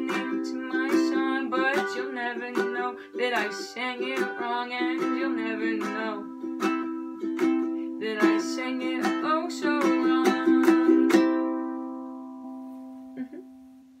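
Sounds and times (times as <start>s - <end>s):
girl singing: 0.0s - 11.8s
ukulele strumming chords: 0.0s - 13.9s.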